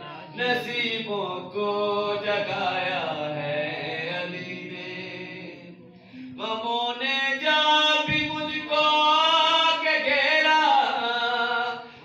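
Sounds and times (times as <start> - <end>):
man chanting through loudspeaker: 0.0 - 5.6, 6.4 - 12.0.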